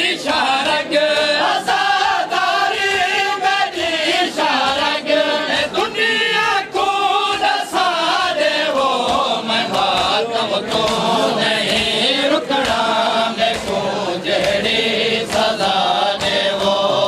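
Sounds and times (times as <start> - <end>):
men chanting in chorus: 0.0 - 17.0.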